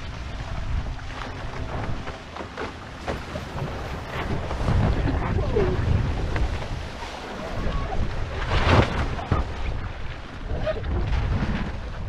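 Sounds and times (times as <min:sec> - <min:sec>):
water rushing past hulls: 0:00.0 - 0:12.0
wind buffeting microphone: 0:00.0 - 0:12.0.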